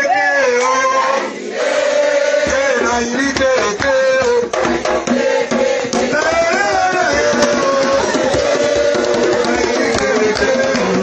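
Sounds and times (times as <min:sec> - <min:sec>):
voices singing a worship song: 0:00.0 - 0:11.0
drum: 0:02.3 - 0:11.0.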